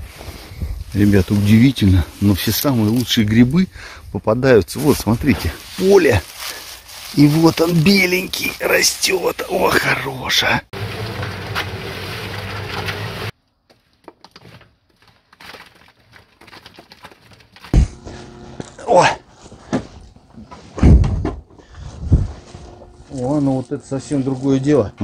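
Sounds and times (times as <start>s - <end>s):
electric concrete mixer humming: 10.8s - 13.3s, 17.8s - 20.4s, 22.3s - 25.0s
heavy thumps and scrapes of concrete: 14.1s - 24.8s.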